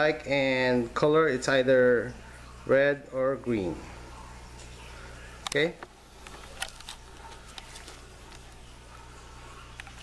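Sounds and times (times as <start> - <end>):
camera handling clicks and rubs: 6.3 - 8.4.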